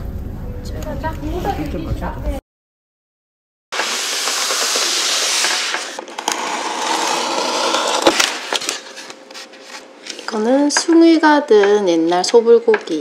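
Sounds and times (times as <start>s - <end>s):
packaging crinkling hiss: 3.8s - 6.1s.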